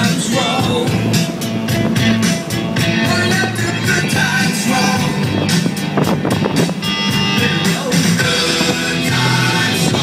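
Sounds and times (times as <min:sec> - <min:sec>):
car road noise: 0:00.0 - 0:10.0
music on car radio: 0:00.0 - 0:10.0.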